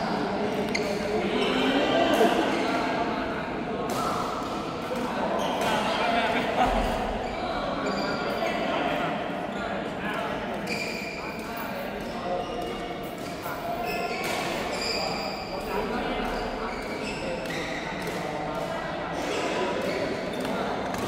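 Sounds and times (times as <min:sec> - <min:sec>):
voices talking in echoing hall: 0:00.0 - 0:21.0.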